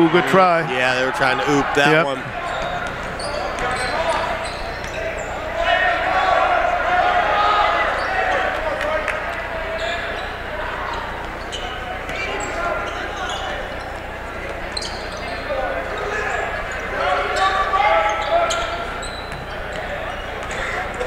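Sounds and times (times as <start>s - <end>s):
crowd indistinct voices: 0.0s - 21.0s.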